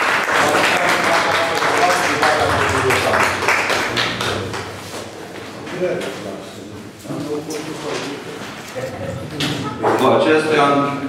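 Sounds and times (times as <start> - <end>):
people clapping: 0.0 - 5.8.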